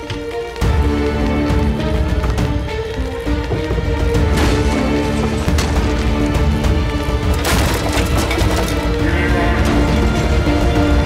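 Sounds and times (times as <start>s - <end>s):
background music: 0.0s - 11.0s
scattered clatter: 3.3s - 9.1s.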